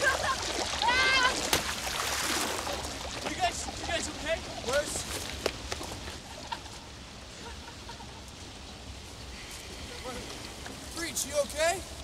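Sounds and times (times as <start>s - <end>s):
river water splashing and rushing: 0.0s - 6.4s
man laughing: 6.2s - 8.2s.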